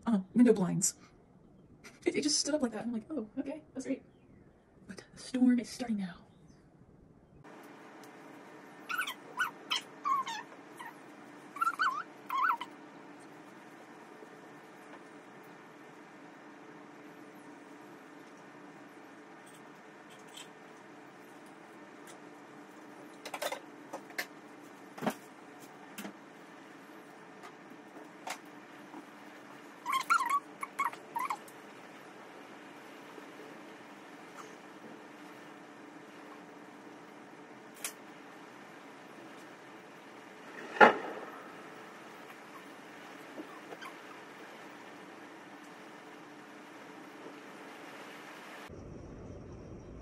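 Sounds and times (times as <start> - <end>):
high pitched animal calls: 8.8 - 12.8, 29.8 - 31.5, 42.3 - 44.4.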